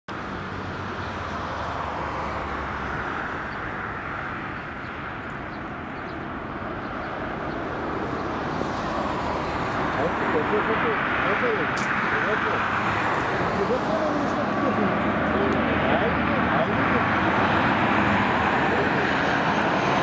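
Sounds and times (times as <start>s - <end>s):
turboprop aircraft drone: 0.1s - 20.0s.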